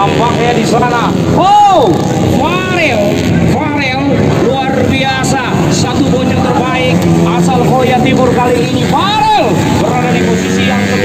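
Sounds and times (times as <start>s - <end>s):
dirt bike engines revving: 0.0s - 11.0s
rumble of engine noise: 0.0s - 11.0s.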